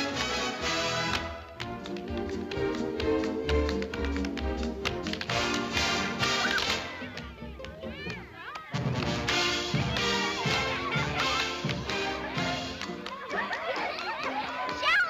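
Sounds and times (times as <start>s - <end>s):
orchestra playing: 0.0s - 7.5s, 8.8s - 13.0s
tap shoes clicking on hard floor: 1.1s - 5.8s.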